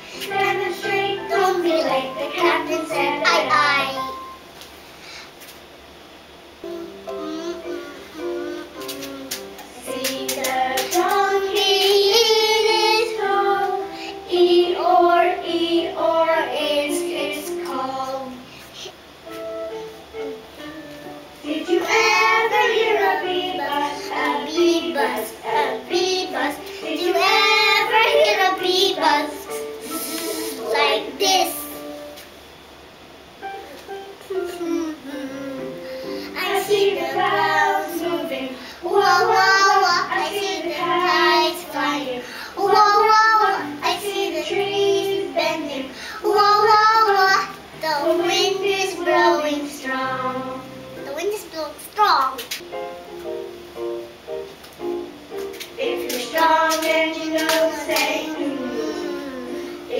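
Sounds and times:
simple backing music: 0:00.0 - 0:04.8, 0:06.5 - 0:59.9
child singing: 0:00.2 - 0:04.2, 0:06.6 - 0:18.4, 0:21.4 - 0:31.8, 0:34.3 - 0:52.3, 0:55.8 - 0:59.9.

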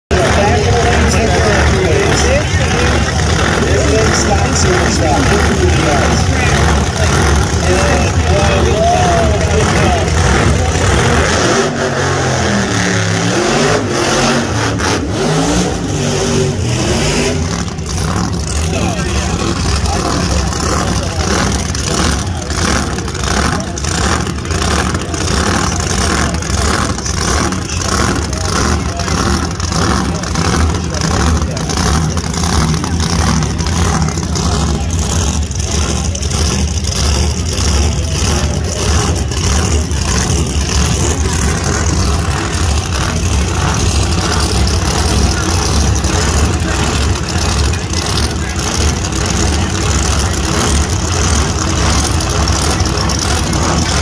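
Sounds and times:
drag racing engine revving and idling: 0:00.0 - 0:54.0.

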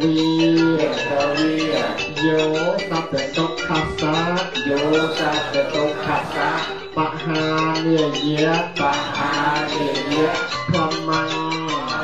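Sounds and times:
person singing over music: 0:00.0 - 0:12.0.

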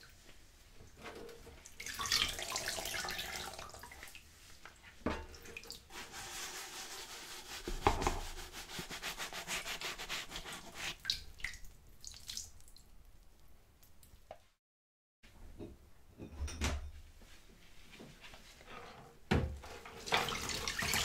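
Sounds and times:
sponge scrubbing plastic colander: 0:05.4 - 0:11.4, 0:19.6 - 0:21.0
colander knocking: 0:07.7 - 0:08.3.

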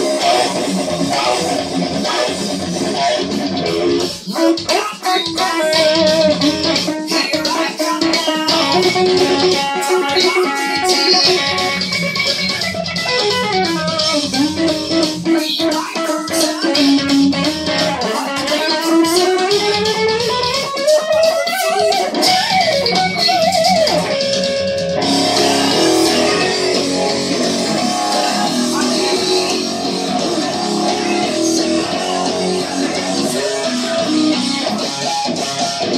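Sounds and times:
electric guitar solo: 0:00.0 - 0:35.9.

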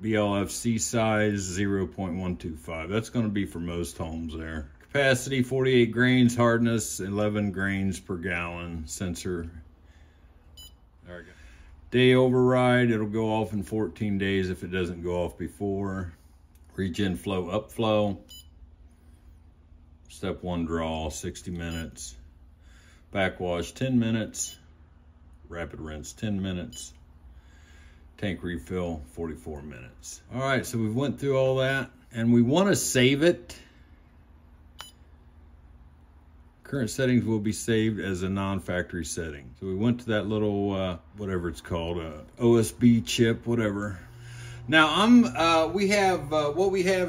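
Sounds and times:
faint steady low hum: 0:00.0 - 0:47.0.

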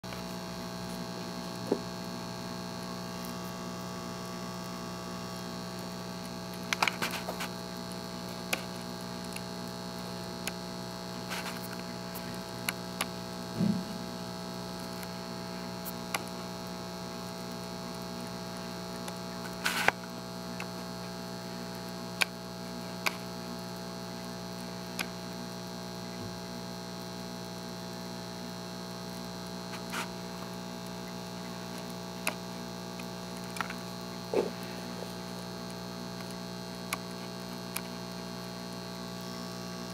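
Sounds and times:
steady electrical hum: 0:00.0 - 0:39.9.

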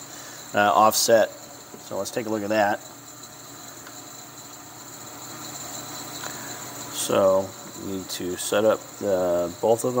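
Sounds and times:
machinery hiss: 0:05.1 - 0:10.0.

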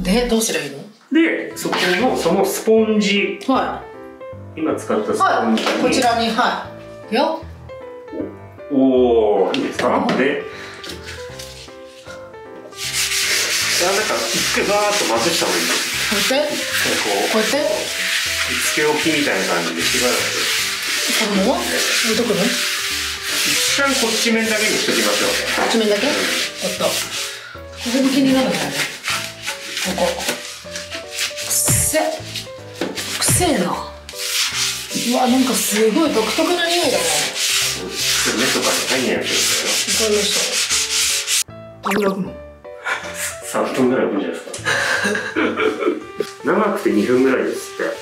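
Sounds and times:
sponge scrubbing wet glass: 0:12.7 - 0:41.4.

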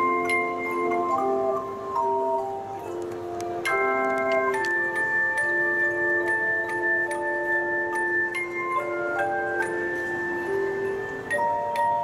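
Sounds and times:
handchimes ringing in chords: 0:00.0 - 0:12.0.

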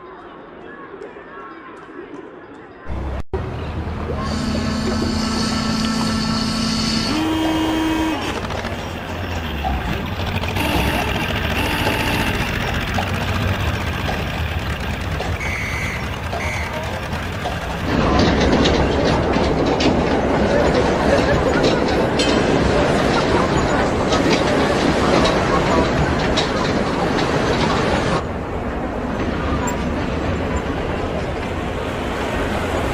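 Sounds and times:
street and crowd noise: 0:00.0 - 0:32.9
traffic noise: 0:02.9 - 0:32.9
low horn tone: 0:04.2 - 0:08.8, 0:10.5 - 0:12.8.

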